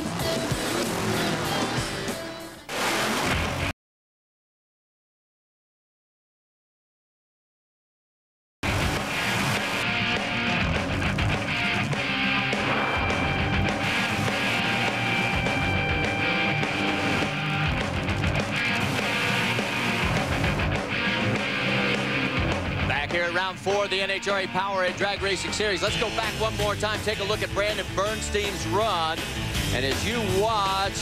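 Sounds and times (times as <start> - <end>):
broadcast theme music: 8.6 - 31.0
man speaking: 22.9 - 31.0.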